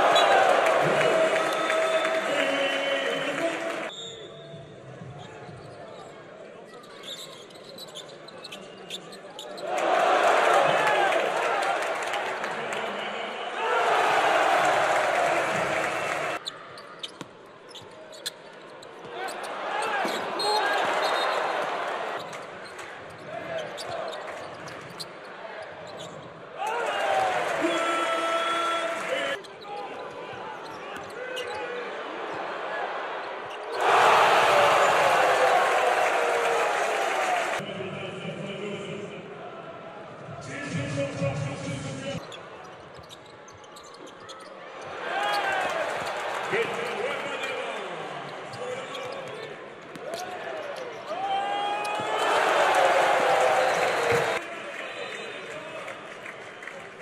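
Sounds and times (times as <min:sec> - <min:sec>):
loud crowd noise: 0:00.0 - 0:57.0.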